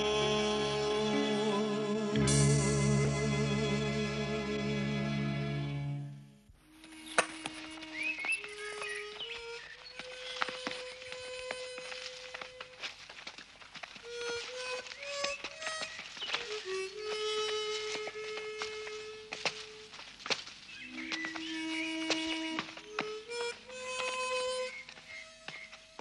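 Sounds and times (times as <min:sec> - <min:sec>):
slow harmonica melody: 0:01.1 - 0:12.9, 0:14.0 - 0:20.0, 0:21.3 - 0:25.5
bird chirps: 0:06.9 - 0:11.1, 0:20.7 - 0:22.6, 0:23.3 - 0:26.0.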